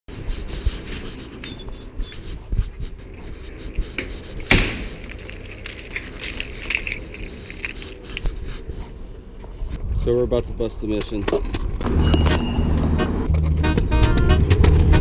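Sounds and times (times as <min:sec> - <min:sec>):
keys jangling against lock: 0:04.8 - 0:08.3.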